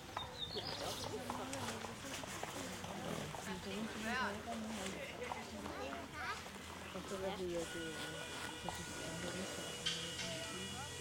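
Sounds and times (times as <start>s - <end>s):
people talking: 0.3s - 11.0s.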